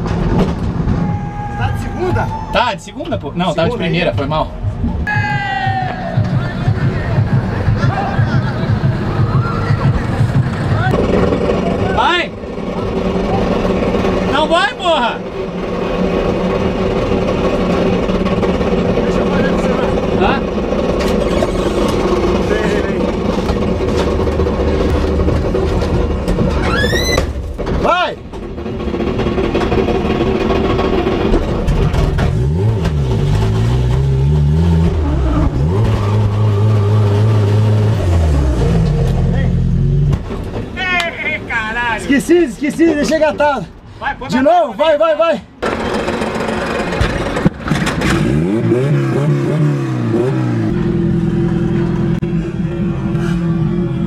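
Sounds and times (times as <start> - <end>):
tire squeals: 0.8 - 3.1, 7.8 - 23.8, 25.8 - 28.2, 34.8 - 39.5
car engine revving: 5.8 - 27.6, 28.2 - 40.8, 45.6 - 54.0.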